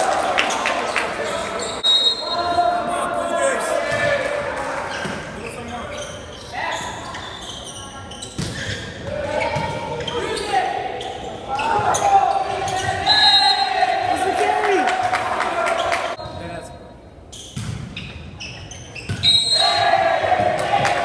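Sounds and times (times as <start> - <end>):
players shouting in a gym: 0.0 - 5.3, 6.5 - 16.2, 19.2 - 21.0.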